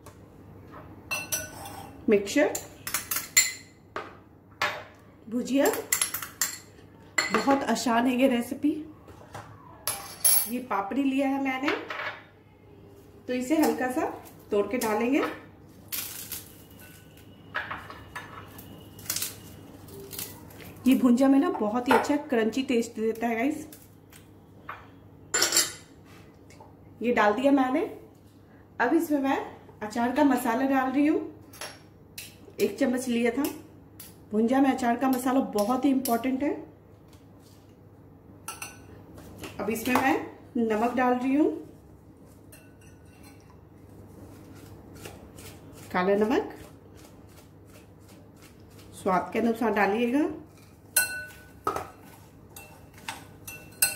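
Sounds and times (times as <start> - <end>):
fried wafers snapping and crackling: 15.8 - 16.7, 19.0 - 20.7.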